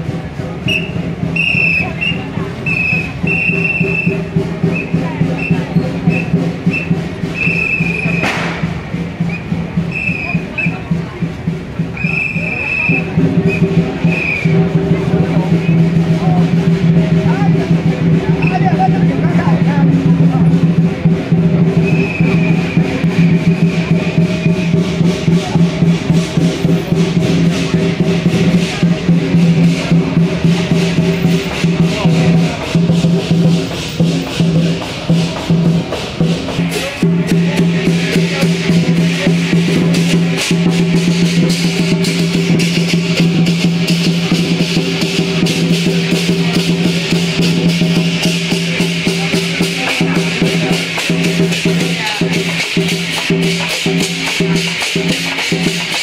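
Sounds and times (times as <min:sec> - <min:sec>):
fast percussion beat: 0:00.0 - 0:56.0
high whistle blasts: 0:00.6 - 0:08.5, 0:09.2 - 0:10.8, 0:12.0 - 0:14.6, 0:21.8 - 0:23.3.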